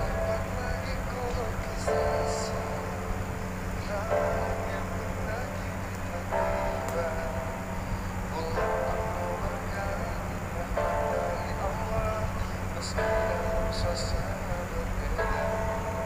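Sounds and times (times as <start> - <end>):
pop ballad duet singing: 0.0 - 16.0.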